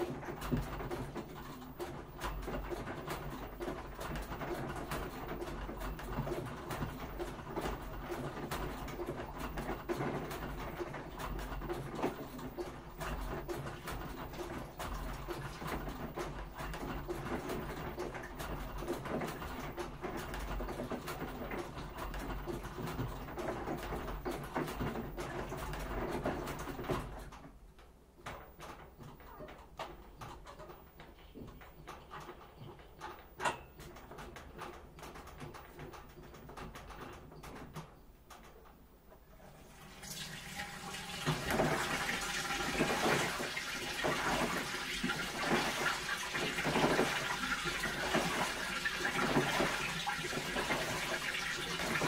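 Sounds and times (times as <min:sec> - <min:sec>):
small clicks and knocks: 0:00.0 - 0:39.4
washing machine drum humming: 0:00.0 - 0:52.0.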